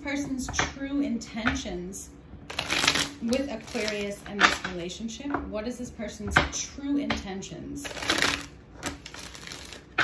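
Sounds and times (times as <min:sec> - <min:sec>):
cards being shuffled: 0:07.8 - 0:10.0.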